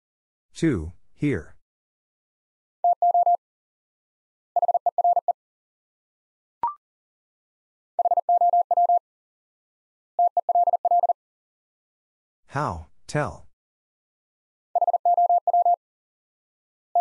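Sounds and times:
morse code beeps: 2.8s - 3.4s, 4.6s - 5.4s, 8.0s - 9.0s, 10.2s - 11.2s, 14.8s - 15.8s.

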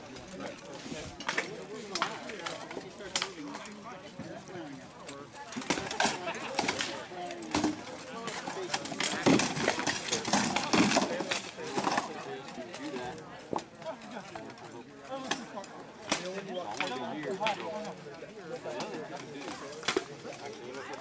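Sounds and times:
faint murmuring voices: 0.0s - 21.0s.

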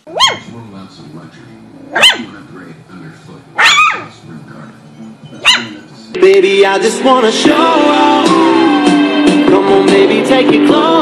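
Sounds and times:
puppy barking high-pitched: 0.0s - 0.5s, 1.9s - 2.3s, 3.6s - 4.1s, 5.4s - 5.8s.

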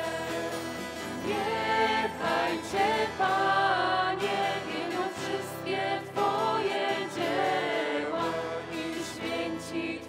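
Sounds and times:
acoustic guitar: 0.0s - 10.0s
group singing in harmony: 0.0s - 10.0s.

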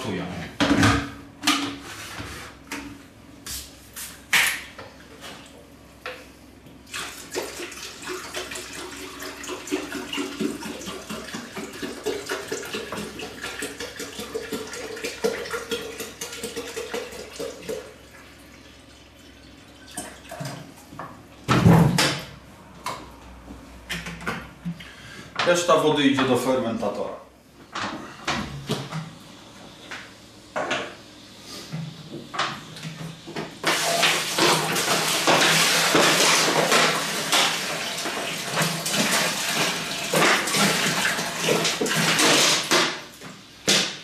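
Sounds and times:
water pouring into a kettle: 6.9s - 20.5s, 33.6s - 42.6s.

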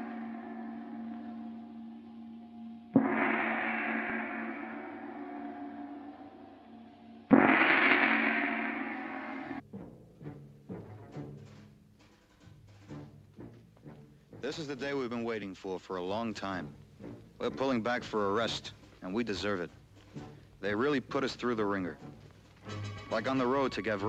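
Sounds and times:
large gong ringing: 0.0s - 9.6s.

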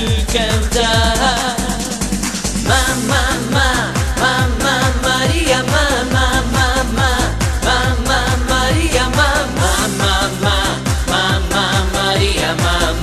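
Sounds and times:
dance-pop song: 0.0s - 13.0s.

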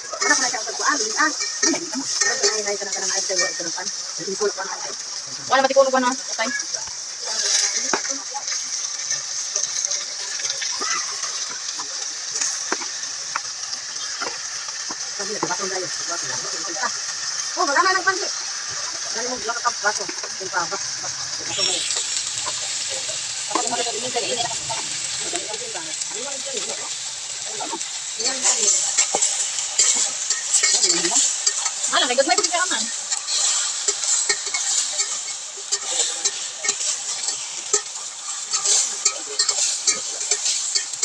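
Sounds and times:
food sizzling in a pan: 0.0s - 41.0s
turner scraping a metal pot: 7.3s - 41.0s.

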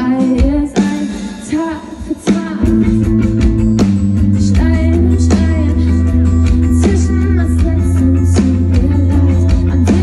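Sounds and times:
live band guitar and drums: 0.0s - 10.0s.

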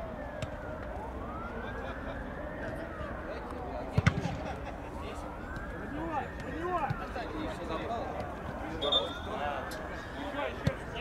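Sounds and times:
wailing emergency siren: 0.0s - 11.0s.

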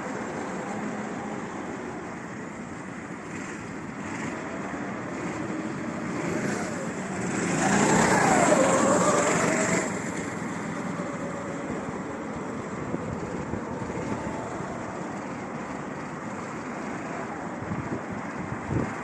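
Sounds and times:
go-kart engines running: 0.0s - 19.0s
go-kart passing by: 0.0s - 19.0s.

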